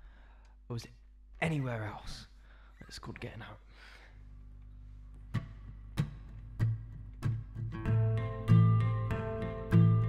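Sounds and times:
acoustic guitar strumming chords: 5.4 - 10.0.

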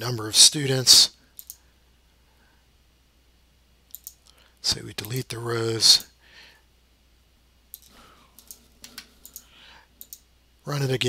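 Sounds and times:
computer mouse clicks: 1.4 - 1.6, 3.9 - 4.4, 7.7 - 10.3.

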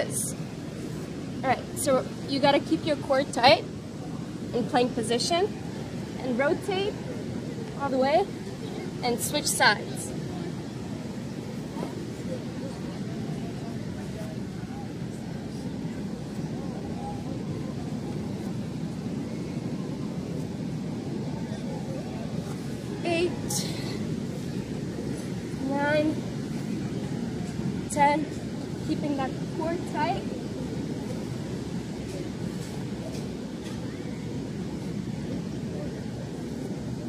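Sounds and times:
beach background noise: 0.0 - 37.0.

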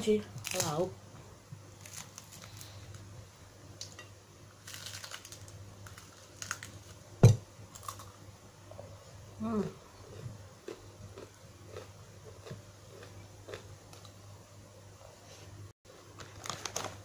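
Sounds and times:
sharp thump: 7.2 - 7.4.

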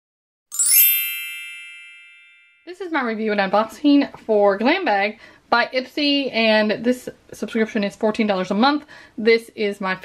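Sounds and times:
bright shimmering chime: 0.5 - 2.8.

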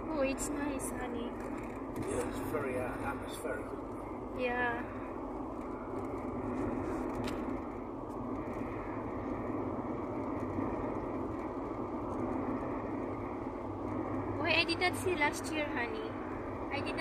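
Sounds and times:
car road and engine noise: 0.0 - 17.0.

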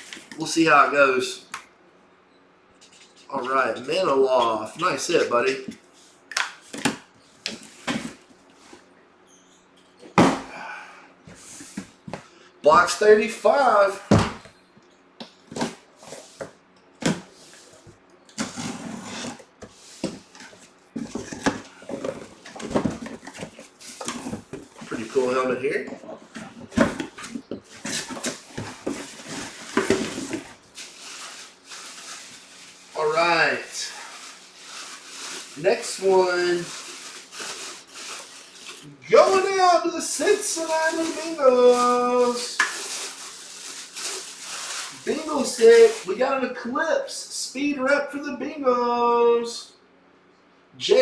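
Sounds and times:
cardboard scraping and rustling: 18.4 - 32.8
plastic bag crinkling: 33.9 - 39.5, 40.3 - 46.1.

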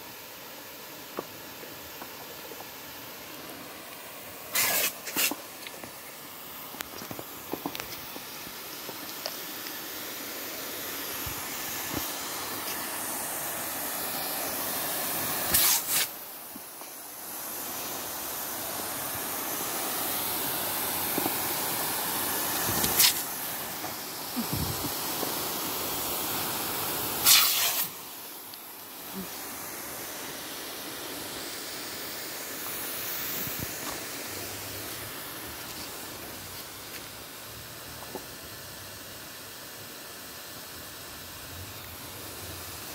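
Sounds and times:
rushes of spray: 0.0 - 42.9
sprinkler water jet hissing: 0.0 - 42.9.

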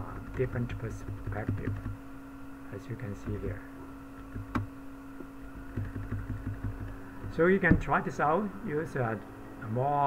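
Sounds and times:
electrical hum: 0.0 - 10.0
keyboard key taps: 0.4 - 2.0, 5.7 - 7.4.

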